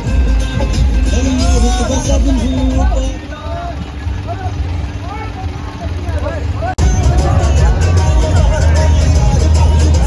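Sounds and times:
tractor engine rumbling: 0.0 - 10.0
men shouting: 1.2 - 9.8.

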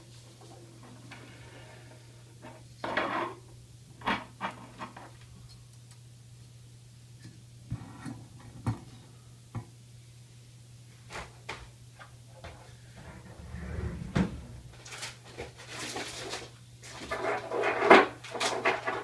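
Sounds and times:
low steady hum: 11.8 - 15.2.

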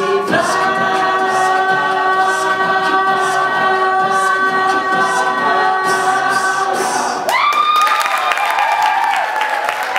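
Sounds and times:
a cappella group singing chord: 0.0 - 7.3
applause: 7.3 - 9.9
audience cheering: 7.3 - 9.9.

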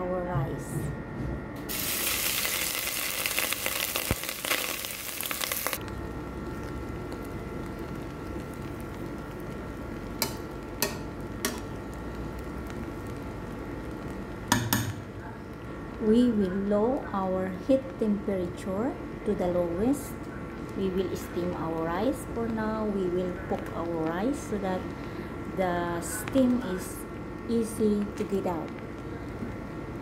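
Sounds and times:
rice sizzling in hot oil: 1.6 - 15.0.

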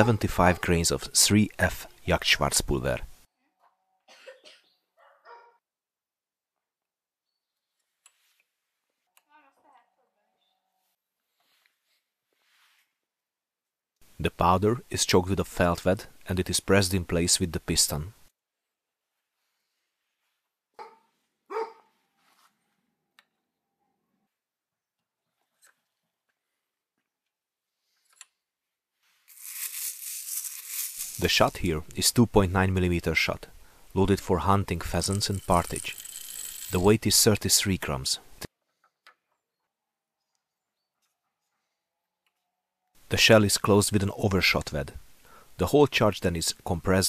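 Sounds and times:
dog barking: 5.0 - 5.6, 20.8 - 22.0.

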